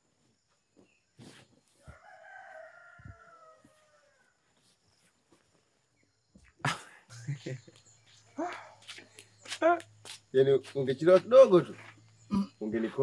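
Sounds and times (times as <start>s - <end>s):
rooster crowing: 1.8s - 4.4s.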